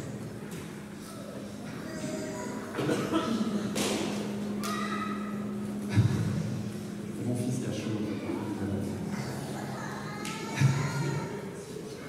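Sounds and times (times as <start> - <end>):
low voices: 0.0 - 12.0
steady low hum: 0.0 - 12.0.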